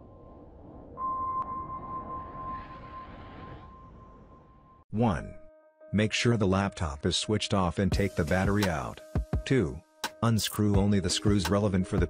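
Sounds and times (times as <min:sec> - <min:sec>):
low rumble: 0:00.0 - 0:04.9.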